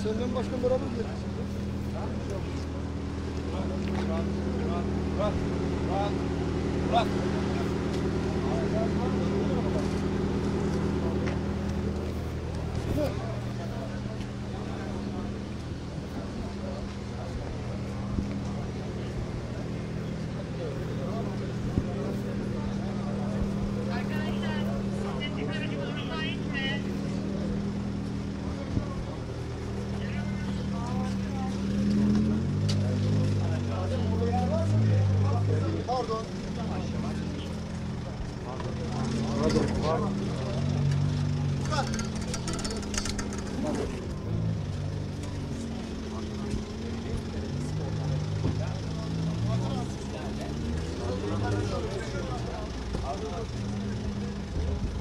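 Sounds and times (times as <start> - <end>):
car engine idling: 0.0 - 55.0
people talking: 0.0 - 55.0.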